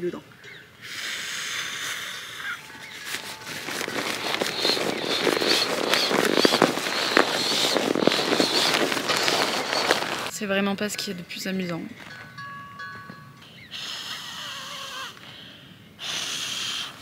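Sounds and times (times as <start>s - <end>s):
nylon sack crackling rustle: 2.4s - 10.3s.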